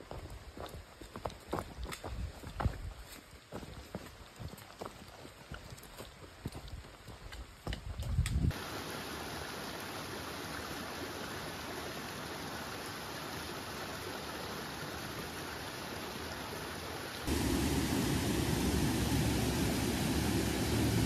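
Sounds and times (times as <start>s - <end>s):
stream rushing over boulders: 8.5s - 21.0s.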